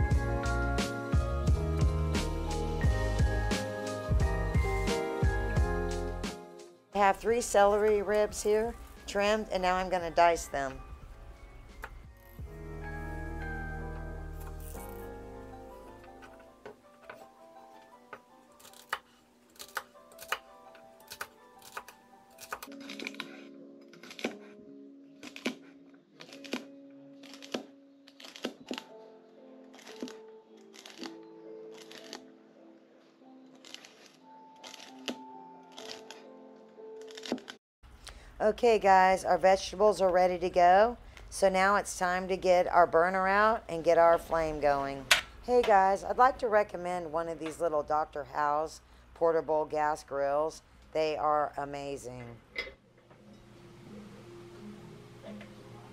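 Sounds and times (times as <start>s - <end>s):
soft background music: 0.0s - 55.9s.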